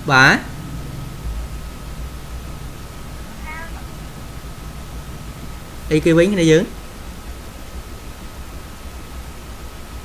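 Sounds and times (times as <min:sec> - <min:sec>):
low hum of room noise: 0:00.0 - 0:10.0
thin constant tone: 0:00.0 - 0:10.0
faint high-pitched call: 0:03.2 - 0:04.3.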